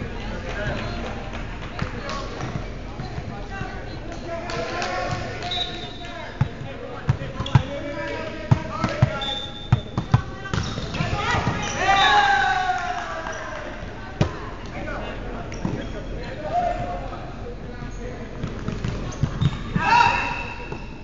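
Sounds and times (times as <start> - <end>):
players' voices: 0.0 - 21.0.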